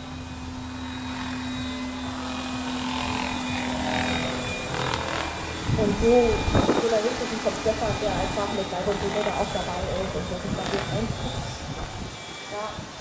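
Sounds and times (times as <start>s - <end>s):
model helicopter rotor hum: 0.0s - 13.0s.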